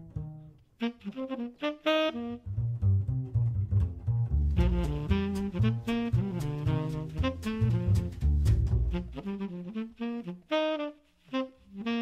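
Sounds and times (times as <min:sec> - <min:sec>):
bass: 0:00.0 - 0:00.8, 0:02.2 - 0:10.3
saxophone playing: 0:00.0 - 0:03.4, 0:04.5 - 0:12.0
drums: 0:04.5 - 0:09.2.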